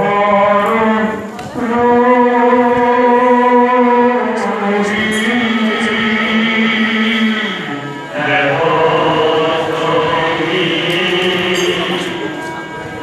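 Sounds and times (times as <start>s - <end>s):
devotional chanting with music: 0.0s - 13.0s.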